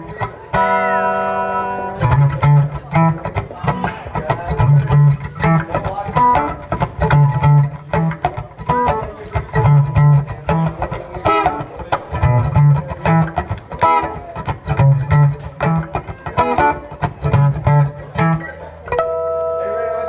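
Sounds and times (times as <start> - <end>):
acoustic guitar through speakers: 0.0 - 20.0.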